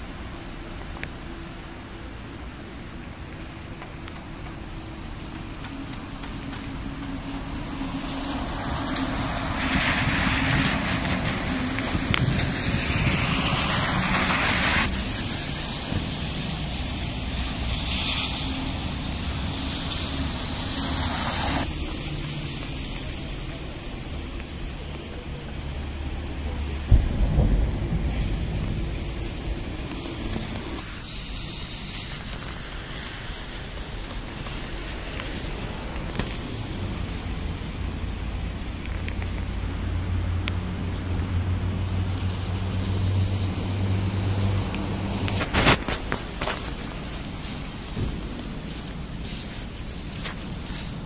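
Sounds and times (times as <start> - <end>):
tyres hissing on wet road: 0.0 - 51.0
low engine hum: 18.5 - 51.0.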